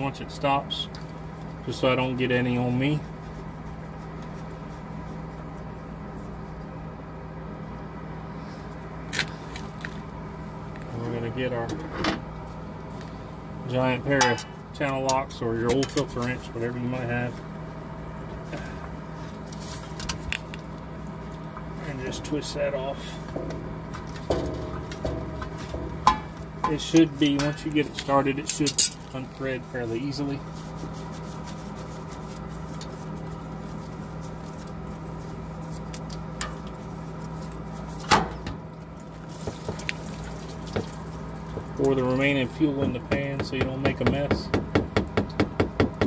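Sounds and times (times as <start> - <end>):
steady low hum: 0.0 - 46.0
fuel filter clicking and scraping: 23.0 - 29.2
sharp knocks: 23.3 - 26.4.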